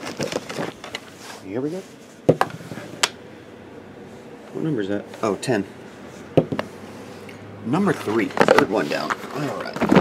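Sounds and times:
die knocking on table: 6.4s - 6.7s.

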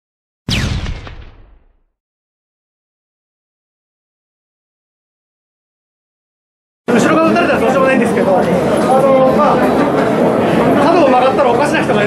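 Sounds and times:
blast-like boom: 0.5s - 2.0s.

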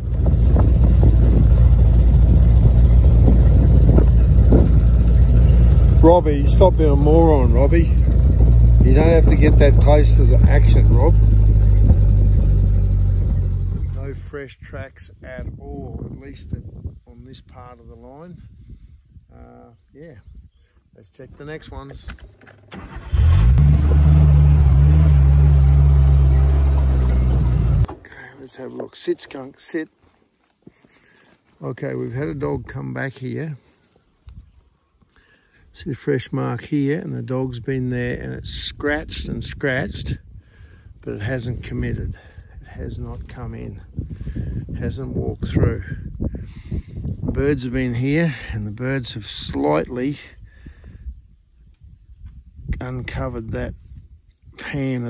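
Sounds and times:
truck engine and road rumble: 0.0s - 14.4s, 21.4s - 30.0s, 35.7s - 50.3s.

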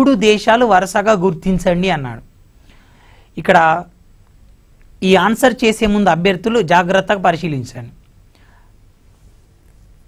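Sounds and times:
faint low studio hum: 0.0s - 10.0s
soft breath: 2.6s - 3.4s, 8.3s - 9.6s.

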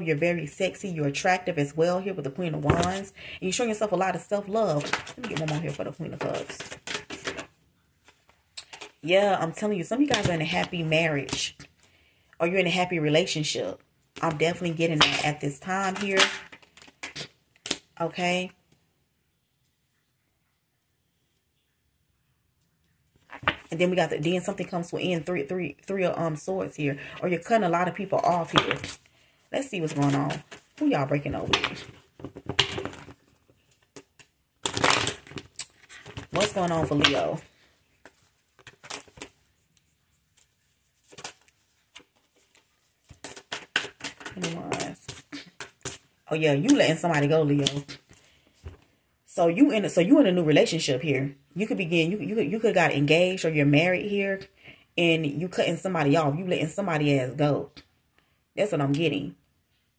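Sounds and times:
cards being shuffled by hand: 29.8s - 46.0s.

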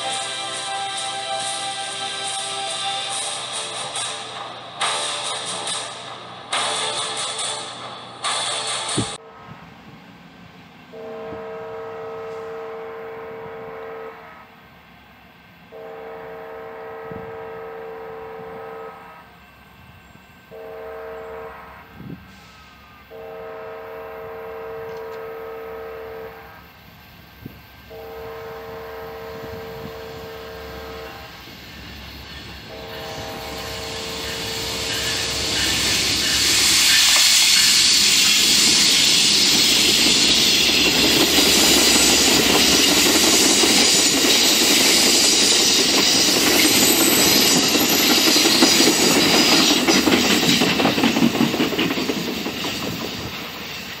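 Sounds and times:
train horn blasts: 0.0s - 4.2s, 8.4s - 10.0s, 10.9s - 14.8s, 15.7s - 19.4s, 20.4s - 26.8s, 27.4s - 31.6s, 32.5s - 39.1s
diesel locomotive passing: 0.0s - 54.0s
train wheels on rails: 0.0s - 54.0s.

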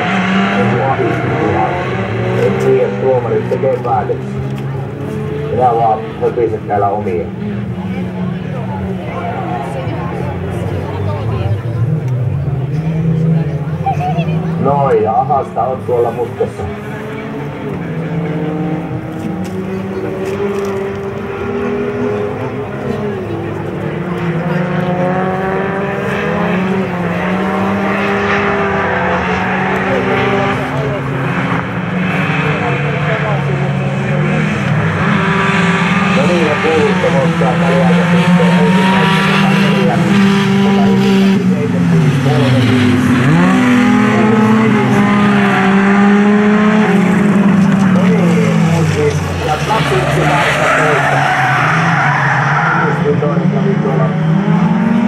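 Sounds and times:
race car engines revving: 0.0s - 55.0s.

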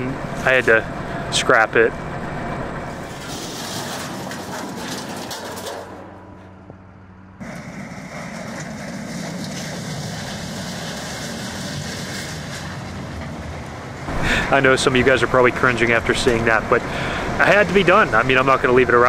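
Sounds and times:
heavy machinery engine running: 0.0s - 19.0s
low hum: 0.0s - 19.0s.

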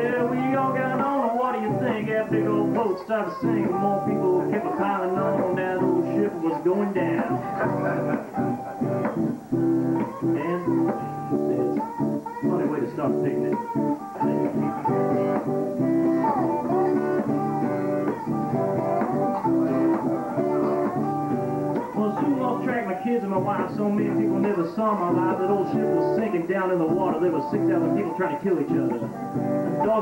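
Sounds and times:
acoustic guitar strumming: 0.0s - 30.0s
guitar picking a melody: 0.0s - 30.0s.

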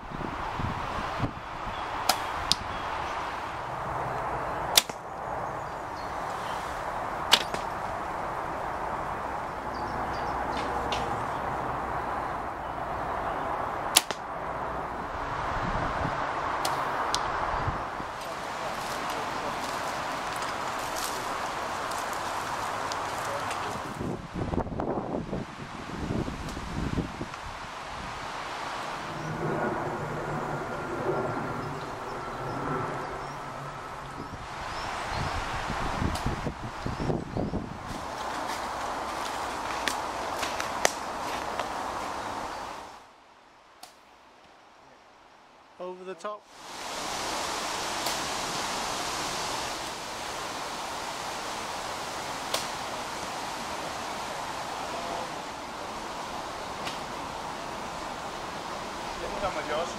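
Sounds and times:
hiss of outdoor air: 0.0s - 43.3s, 46.4s - 59.9s
rustling: 18.1s - 24.1s, 37.8s - 42.7s.

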